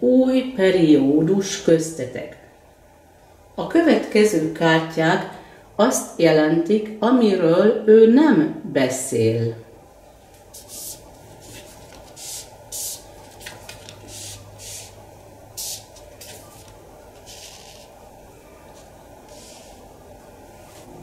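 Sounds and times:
paper cards swishing on table: 10.6 - 14.9.

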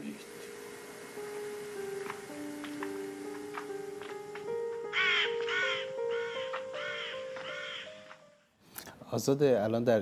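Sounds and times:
slow music with held notes: 0.0 - 9.0
crow cawing: 4.8 - 8.2.

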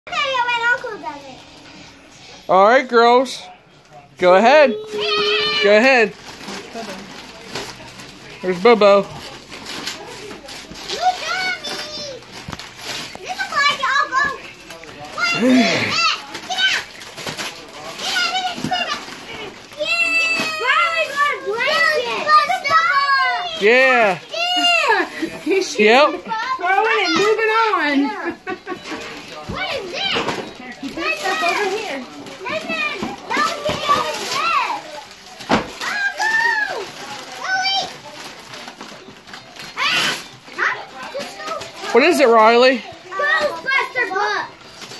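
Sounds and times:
children chattering excitedly: 0.1 - 2.6, 4.2 - 44.9
wrapping paper crinkling and tearing: 4.7 - 27.9, 28.6 - 44.9
children's excited voices: 15.2 - 16.8.

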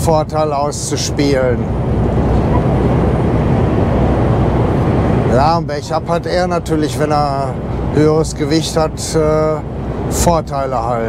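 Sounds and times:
truck engine drone: 0.0 - 11.0
tyre and road noise: 0.9 - 8.0.

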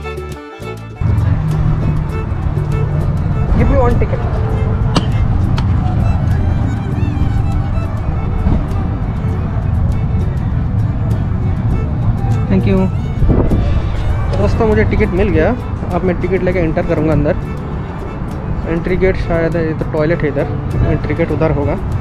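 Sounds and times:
wind buffeting microphone: 1.0 - 22.0.

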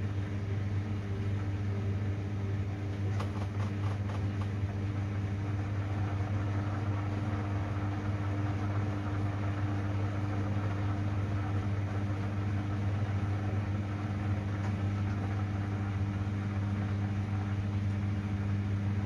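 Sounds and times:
drain pump humming: 0.0 - 19.0.

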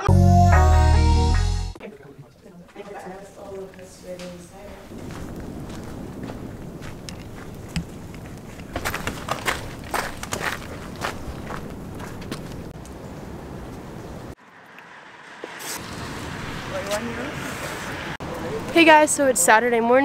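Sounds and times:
footsteps on gravel path: 2.6 - 12.8.

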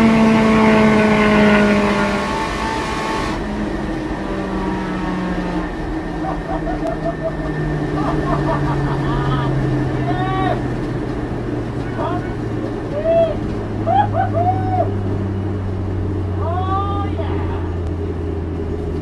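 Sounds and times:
car engine slowing down: 0.0 - 19.0
person laughing: 6.1 - 9.8, 13.9 - 14.7.

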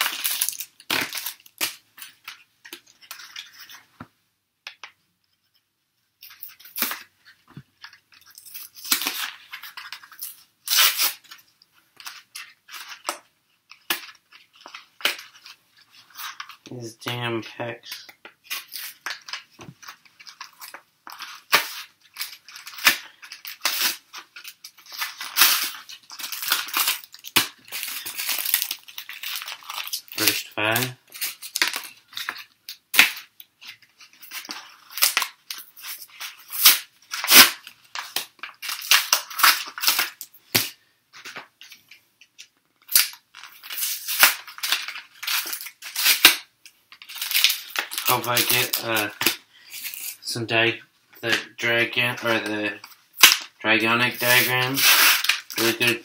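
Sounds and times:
foil wrappers crinkling and tearing: 0.0 - 3.8, 6.3 - 50.3, 51.6 - 56.0.

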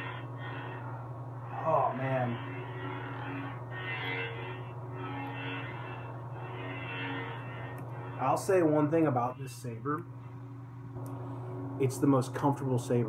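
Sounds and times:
lightsaber blade hum: 0.0 - 13.0.

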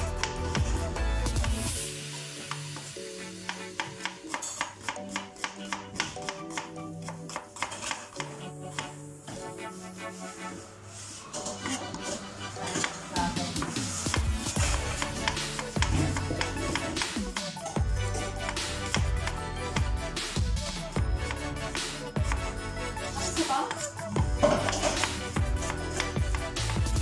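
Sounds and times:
background music with held notes: 0.0 - 27.0
knife chopping on plastic board: 3.5 - 8.9.

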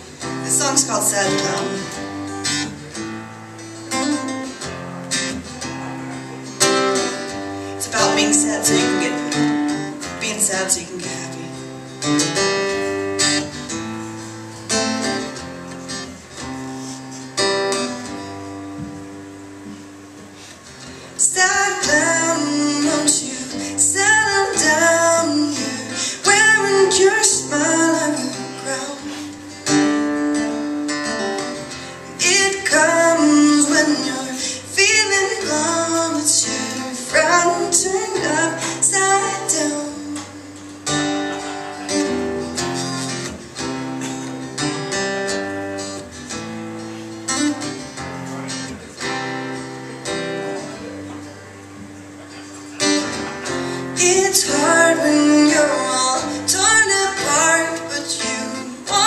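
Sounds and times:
acoustic guitar: 0.0 - 59.0
woman singing: 0.2 - 2.6, 7.7 - 11.8, 21.2 - 40.6, 53.9 - 59.0.

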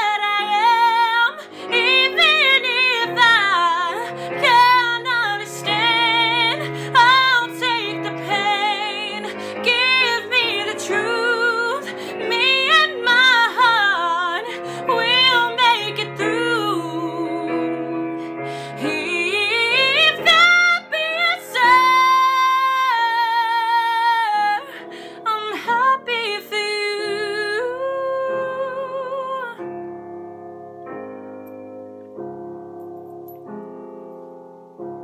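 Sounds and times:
woman singing pop ballad: 0.0 - 29.8
piano accompaniment: 0.0 - 35.0.

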